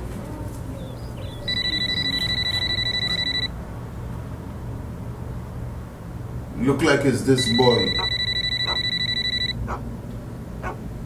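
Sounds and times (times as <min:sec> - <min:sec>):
cordless phone ringing: 0:01.2 - 0:03.5, 0:07.3 - 0:09.6.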